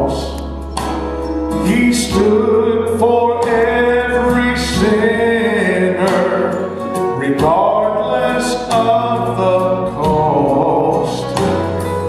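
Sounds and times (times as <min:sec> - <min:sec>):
man singing gospel song: 0:00.0 - 0:00.6, 0:01.5 - 0:12.0
instrumental accompaniment: 0:00.0 - 0:12.0.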